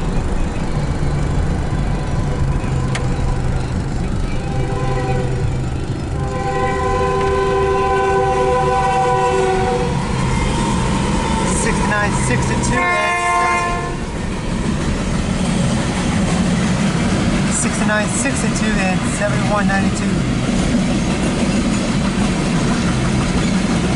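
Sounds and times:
steady low rumble: 0:00.0 - 0:23.9
locomotive air horn chord: 0:04.3 - 0:10.2, 0:11.4 - 0:14.0.

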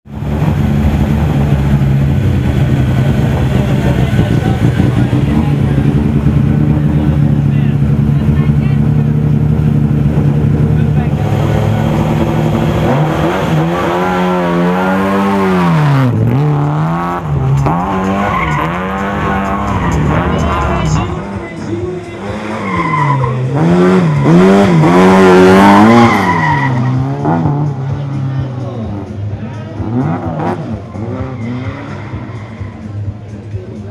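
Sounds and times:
car engine revving: 0:00.0 - 0:33.9.

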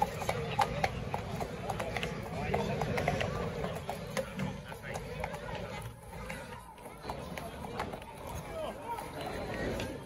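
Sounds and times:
horse hooves on wet road: 0:00.0 - 0:05.4
people chattering: 0:00.0 - 0:10.0.

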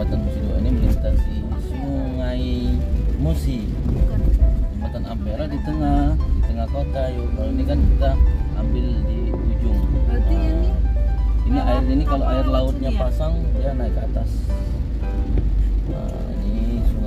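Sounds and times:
car road rumble on wet bridge: 0:00.0 - 0:17.0
music: 0:00.0 - 0:17.0.

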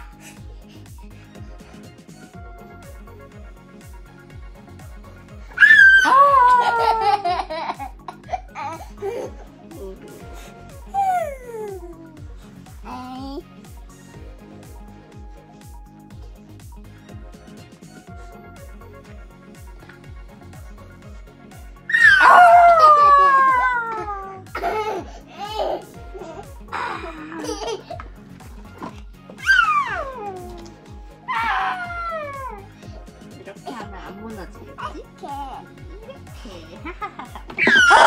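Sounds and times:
background music with beat: 0:00.0 - 0:38.0
toddler squealing: 0:05.6 - 0:07.1, 0:21.9 - 0:24.4, 0:29.4 - 0:30.6, 0:31.3 - 0:32.7, 0:37.6 - 0:38.0
toddler laughing: 0:05.6 - 0:09.4, 0:21.9 - 0:28.0, 0:29.4 - 0:30.7, 0:37.0 - 0:38.0.

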